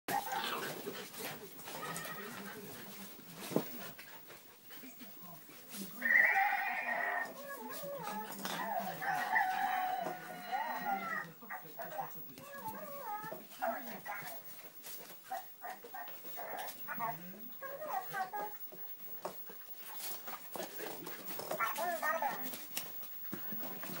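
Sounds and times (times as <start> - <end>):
dogs whining: 6.0 - 11.3, 12.4 - 14.0.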